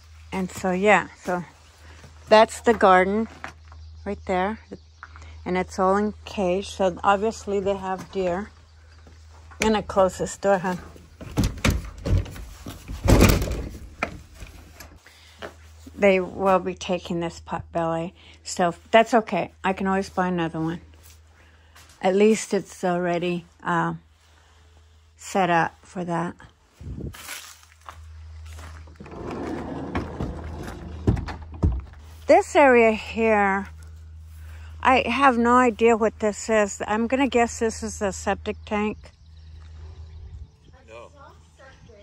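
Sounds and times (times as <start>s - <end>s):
wooden door scraping: 10.8s - 15.0s, 28.8s - 32.0s
wind rumble on microphone: 26.7s - 27.2s, 39.0s - 40.9s, 41.5s - 42.0s
footsteps crunching on gravel: 26.9s - 29.0s.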